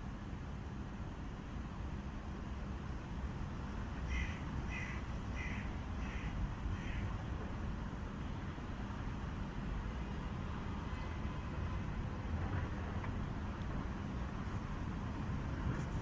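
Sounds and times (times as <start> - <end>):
low rumble of city traffic: 0.0 - 16.0
bird calling: 4.1 - 7.0.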